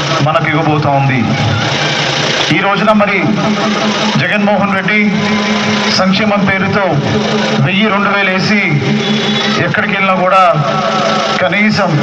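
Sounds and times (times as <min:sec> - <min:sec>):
man speaking over loudspeakers: 0:00.0 - 0:01.5, 0:02.5 - 0:12.0
dense noisy din: 0:00.0 - 0:12.0.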